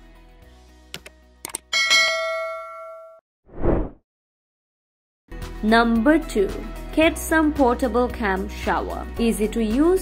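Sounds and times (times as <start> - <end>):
bright bell ding: 1.8 - 3.2.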